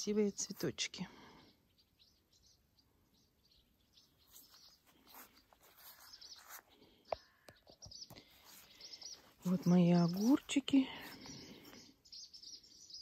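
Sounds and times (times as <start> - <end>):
faint bird chirps: 0.1 - 13.0.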